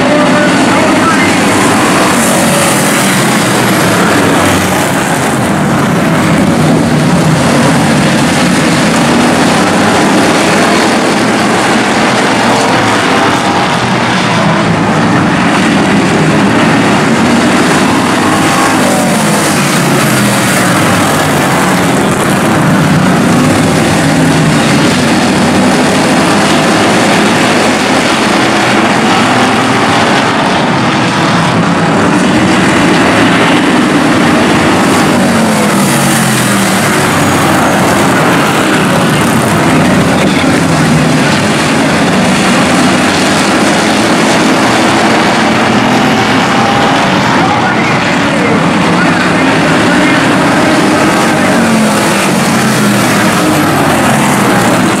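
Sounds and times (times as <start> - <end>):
race car engines passing: 0.0 - 55.0.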